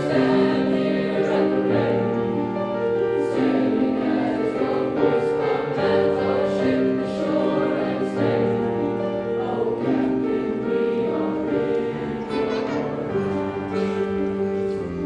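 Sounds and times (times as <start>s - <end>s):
boys' choir singing in harmony: 0.0s - 15.0s
piano chords: 0.0s - 15.0s.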